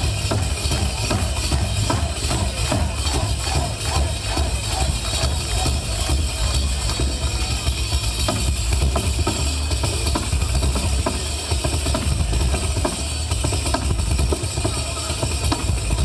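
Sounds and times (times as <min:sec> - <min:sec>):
frame drum struck rapidly: 0:00.0 - 0:16.0.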